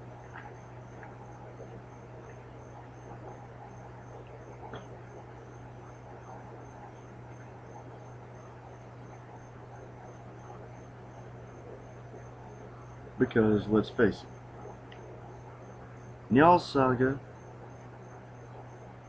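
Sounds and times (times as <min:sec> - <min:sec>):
cricket chirping: 0:00.0 - 0:19.0
low hum and hiss: 0:00.0 - 0:19.0.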